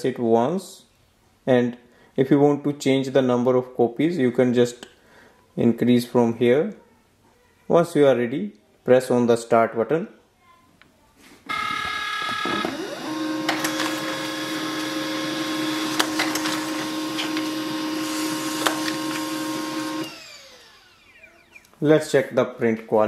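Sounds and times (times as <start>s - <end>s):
printer whine and hum: 11.5s - 21.6s
printer clicks: 11.7s - 20.1s.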